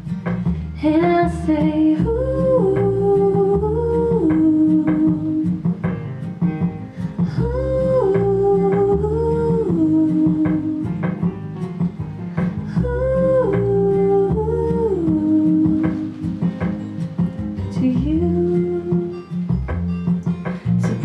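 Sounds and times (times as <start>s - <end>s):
bass: 0.0s - 21.0s
plucked acoustic guitar: 0.0s - 21.0s
woman singing wordless melody: 0.7s - 5.8s, 7.1s - 11.3s, 12.6s - 16.8s, 17.6s - 19.7s.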